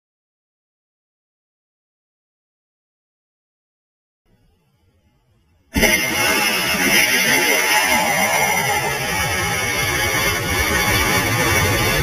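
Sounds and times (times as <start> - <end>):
rocket motor roaring: 5.8 - 12.0.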